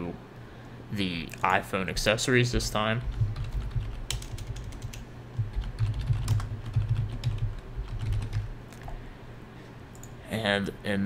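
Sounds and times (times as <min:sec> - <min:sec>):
typing on computer keyboard: 0:03.0 - 0:09.0.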